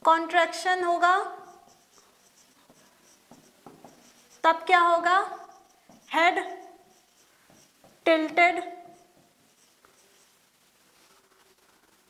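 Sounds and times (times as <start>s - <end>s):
woman speaking: 0.0s - 1.7s, 4.4s - 5.5s, 6.1s - 6.8s, 8.0s - 9.0s
marker pen scratching on whiteboard: 0.7s - 12.0s.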